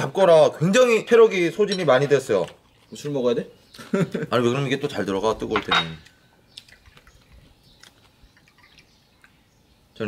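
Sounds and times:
tableware clicking: 0:05.6 - 0:06.1
liquid pouring into glasses: 0:08.3 - 0:09.4.

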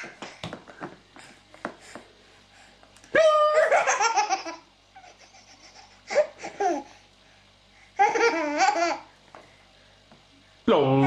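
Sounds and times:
baby laughing hysterically: 0:03.5 - 0:06.9, 0:08.0 - 0:09.0.

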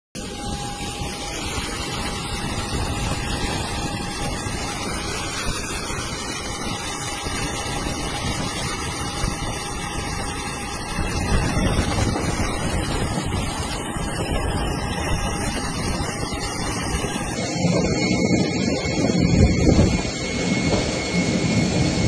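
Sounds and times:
airliner engine and cabin noise: 0:00.2 - 0:22.0
thin steady whine: 0:00.2 - 0:22.0.

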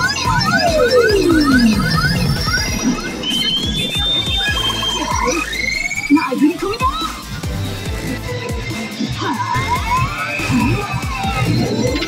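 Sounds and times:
electronic sound effects with pitch sweeps: 0:00.0 - 0:12.0
loud music: 0:00.0 - 0:12.0.

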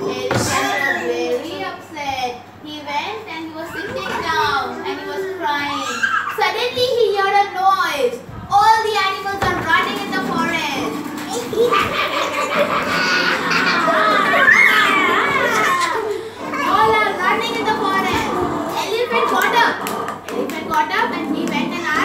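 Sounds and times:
children laughing and chattering: 0:00.0 - 0:02.6, 0:03.3 - 0:22.0.

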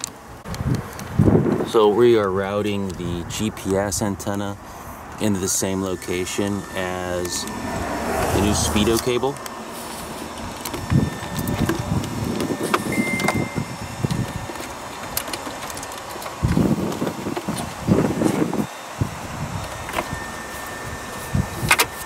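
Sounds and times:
cables rustling and rubbing: 0:13.9 - 0:18.7.

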